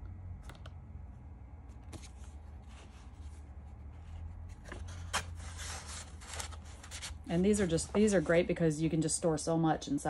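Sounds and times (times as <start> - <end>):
steady low hum: 0.0 - 10.0
paper pages rustling: 1.7 - 8.6.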